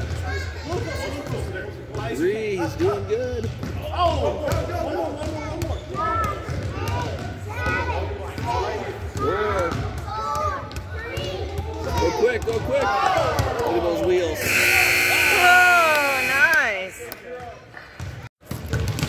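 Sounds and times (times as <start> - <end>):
shouting and cheering voices: 3.8 - 17.7
basketballs bouncing on hardwood: 4.5 - 7.8, 18.0 - 19.0
scoreboard buzzer: 14.4 - 17.1.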